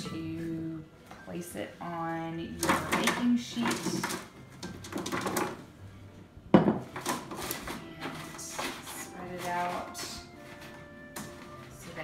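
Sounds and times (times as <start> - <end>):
bowl and pan clattering: 2.6 - 5.6.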